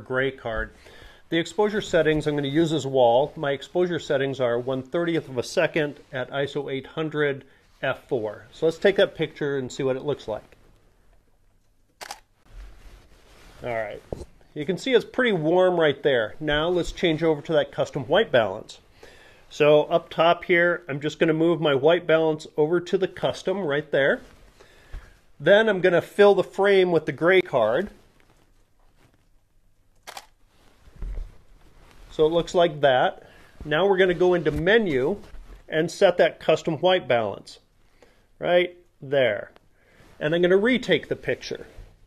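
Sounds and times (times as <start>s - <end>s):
camera shutter click: 30.0s - 30.3s.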